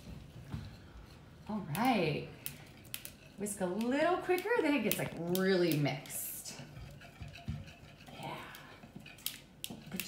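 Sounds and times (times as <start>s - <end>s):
whisk clicking against bowl: 1.7s - 10.0s
whisk beating liquid in bowl: 3.2s - 10.0s.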